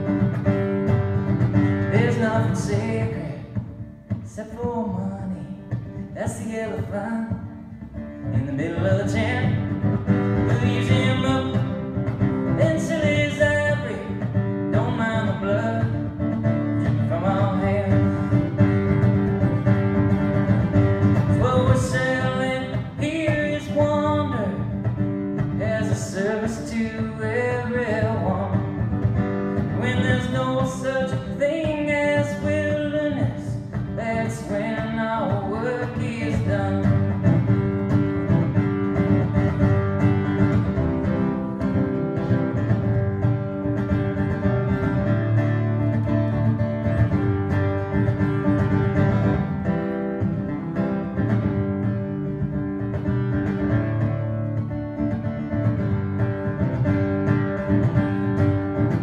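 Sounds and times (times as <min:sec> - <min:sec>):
acoustic guitar strumming: 0:00.0 - 0:59.0
person singing: 0:01.8 - 0:11.9, 0:21.2 - 0:24.8, 0:29.7 - 0:37.3.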